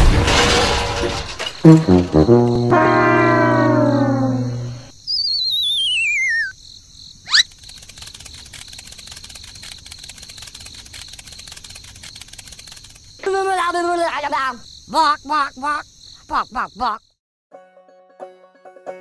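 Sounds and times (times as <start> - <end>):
crickets chirping: 1.4 - 17.2
horn-like tone sliding down: 1.7 - 4.9
wobbling whistle falling: 2.3 - 6.5.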